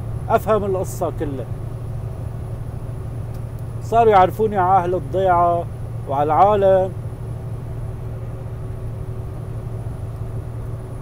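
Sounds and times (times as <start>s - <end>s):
vehicle engine and tyres droning: 0.0s - 11.0s.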